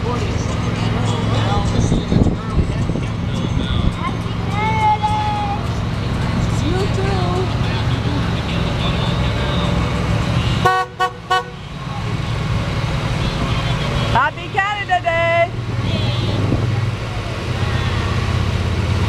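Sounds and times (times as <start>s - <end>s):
vehicle engines rolling past: 0.0s - 19.0s
vehicle horn toots: 10.4s - 11.6s.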